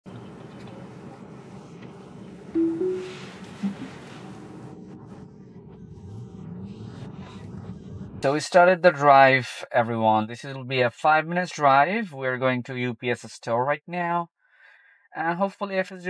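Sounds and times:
two-note rising chime: 2.6 - 3.6
brief lower tone: 2.6 - 3.9.

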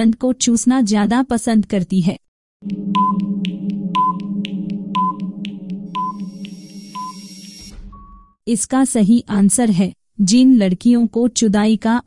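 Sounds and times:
timer ticks: 2.6 - 7.7
short beep: 6.0 - 8.4.

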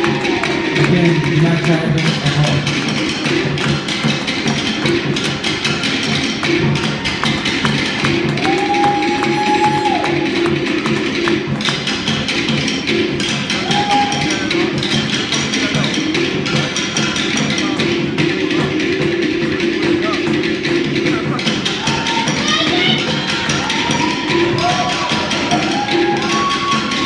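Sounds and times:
wooden drums beating: 0.0 - 27.0.

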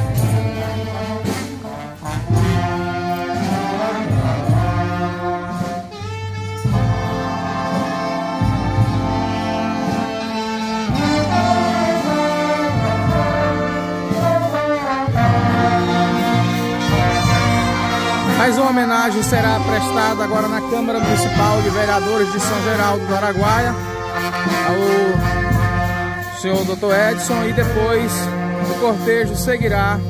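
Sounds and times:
drum beat: 0.0 - 30.0
marching band brass: 0.0 - 30.0.

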